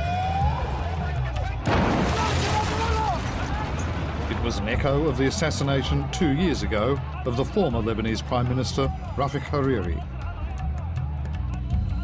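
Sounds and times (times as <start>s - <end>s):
people shouting: 0.0s - 4.0s.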